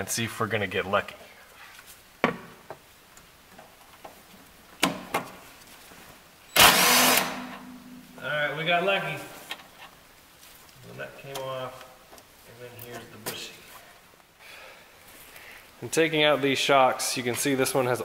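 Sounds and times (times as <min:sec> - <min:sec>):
metal grinding burst: 0:06.6 - 0:08.2.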